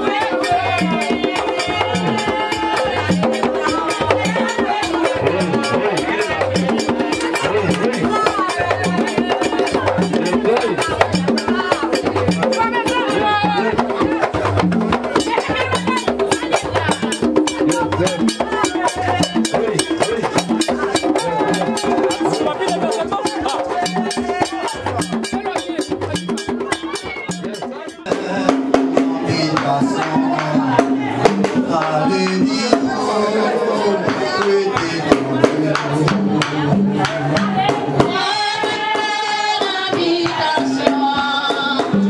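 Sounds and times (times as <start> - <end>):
hand drums beating fast rhythm: 0.0 - 42.0
voices singing: 0.0 - 42.0.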